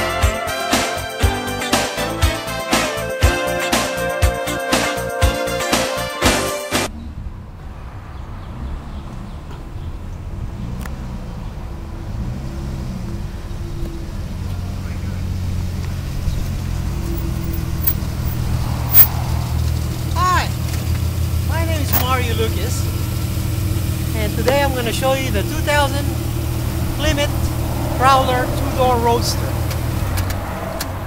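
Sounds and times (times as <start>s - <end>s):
intro music: 0.0s - 6.9s
car engine low rumble: 6.9s - 31.0s.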